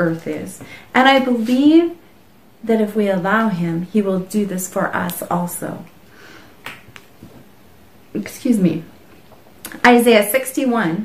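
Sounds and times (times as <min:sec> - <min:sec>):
faint breath: 0:06.1 - 0:06.6.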